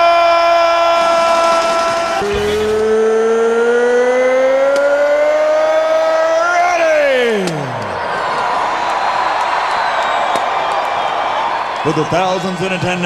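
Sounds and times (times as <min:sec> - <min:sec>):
announcer shouting into microphone: 0:05.0 - 0:07.8.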